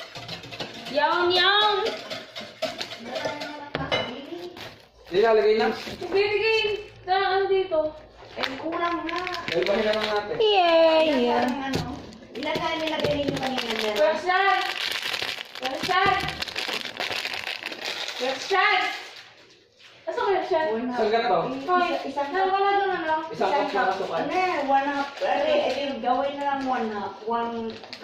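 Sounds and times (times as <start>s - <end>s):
package crinkling: 8.2s - 19.6s, 27.5s - 28.0s.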